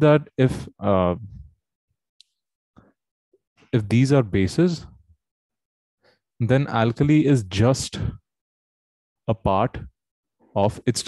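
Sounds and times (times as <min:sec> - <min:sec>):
man saying uh: 0:00.0 - 0:01.4.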